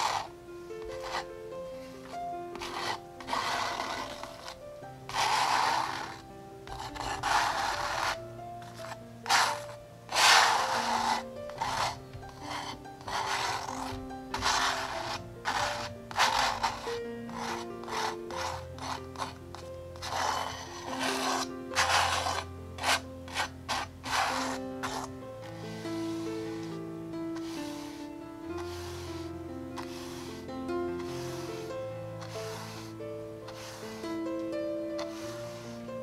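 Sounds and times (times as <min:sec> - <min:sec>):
palette knife scraping paint: 0:00.0 - 0:36.0.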